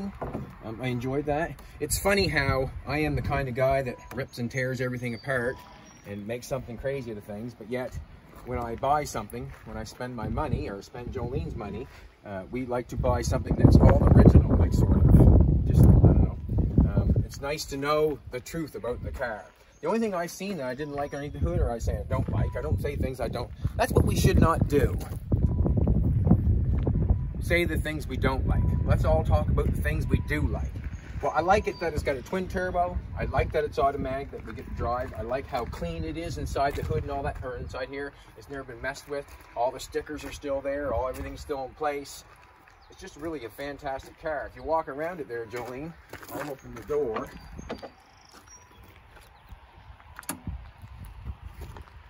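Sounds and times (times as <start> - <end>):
wind buffeting microphone: 0.0 - 4.8, 5.9 - 19.5, 21.0 - 52.0.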